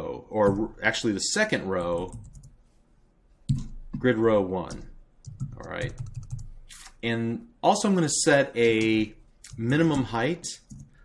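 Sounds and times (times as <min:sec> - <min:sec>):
keyboard keystrokes: 0:04.7 - 0:06.5.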